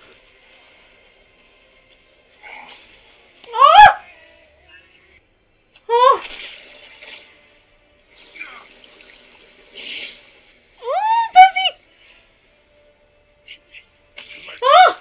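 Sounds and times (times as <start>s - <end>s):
high-pitched vocal cries: 3.5s - 4.1s.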